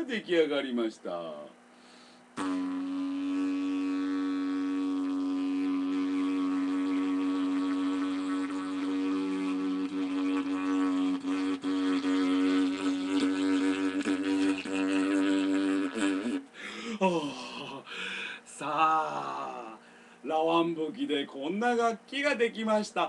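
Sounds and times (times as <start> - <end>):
didgeridoo drone: 2.4 - 16.4.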